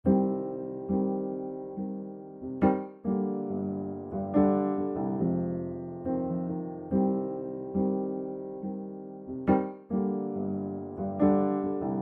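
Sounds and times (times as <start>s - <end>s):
electric piano chords: 0.0s - 12.0s.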